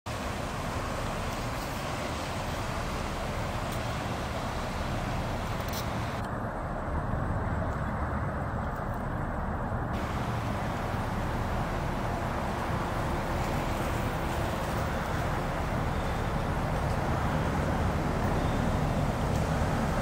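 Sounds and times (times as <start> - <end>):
ship engines rumbling: 0.1 - 6.2, 10.0 - 20.0.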